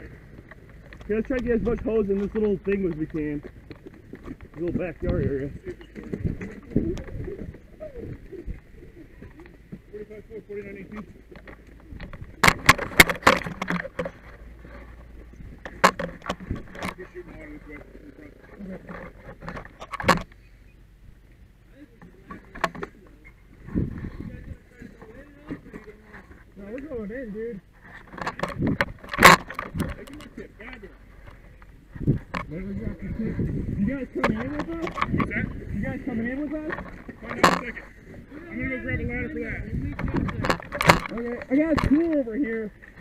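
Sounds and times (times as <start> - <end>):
clicks and rustles: 0.0 - 20.6, 21.2 - 43.0
gear being handled and bumped: 0.4 - 7.7, 10.6 - 17.2, 27.8 - 32.6, 39.8 - 42.4.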